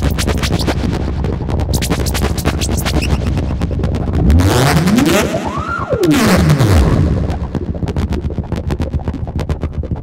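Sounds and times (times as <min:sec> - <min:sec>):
synthesizer tone sweeping upward: 0:00.0 - 0:09.0
synthesizer clicking pulses: 0:00.0 - 0:10.0
synthesizer low buzz: 0:00.0 - 0:10.0.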